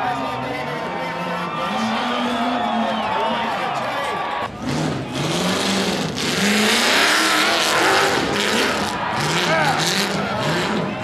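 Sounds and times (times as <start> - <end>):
crowd shouting: 0.0 - 5.5, 6.7 - 11.0
buggy engine revving: 4.5 - 11.0.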